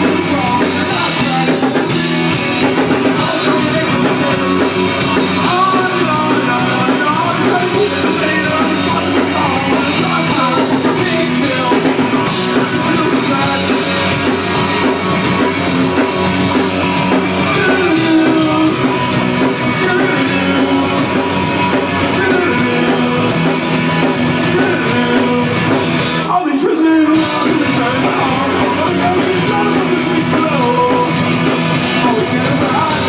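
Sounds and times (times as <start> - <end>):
man singing into a microphone: 0.0 - 14.4, 17.4 - 33.0
drum kit: 0.0 - 33.0
electric guitar: 0.0 - 33.0.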